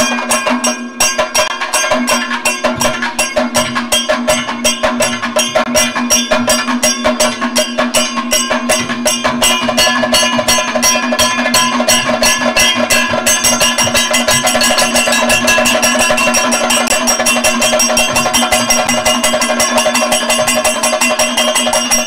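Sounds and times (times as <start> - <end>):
drums beaten in fast strokes: 0.0 - 22.0
steady ringing tone: 0.0 - 22.0.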